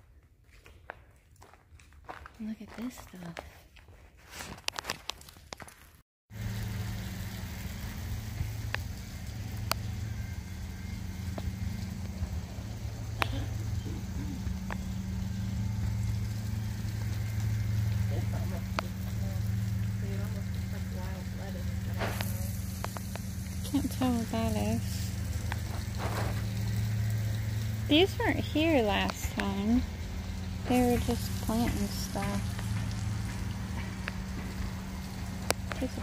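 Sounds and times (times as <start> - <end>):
low machine hum: 6.3 - 36.0
faint ticks: 9.6 - 9.8.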